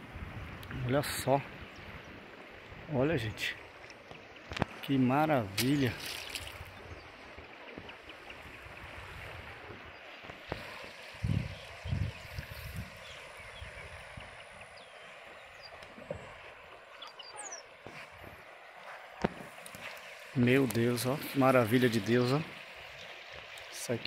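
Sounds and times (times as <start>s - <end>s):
river flowing: 0.0s - 24.0s
wind buffeting microphone: 5.8s - 16.4s.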